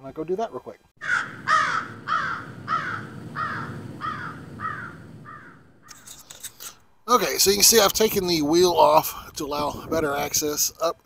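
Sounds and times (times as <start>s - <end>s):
crow cawing: 1.0s - 6.0s
steady low rumble: 1.3s - 5.9s.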